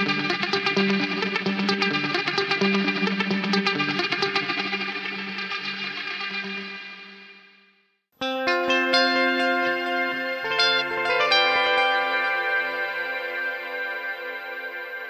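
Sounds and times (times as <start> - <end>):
electric guitar picked ringing notes: 0.0 - 5.6, 8.2 - 15.0.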